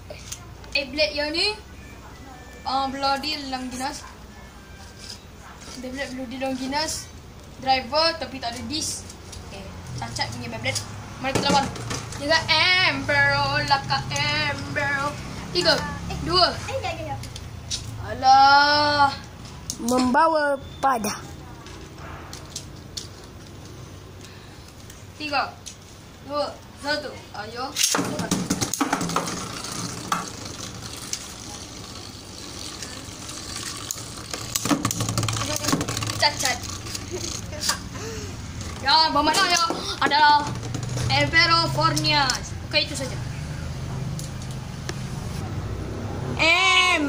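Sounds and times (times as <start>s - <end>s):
low background noise: 0.0s - 47.0s
plastic spinning top clicks: 32.7s - 37.8s.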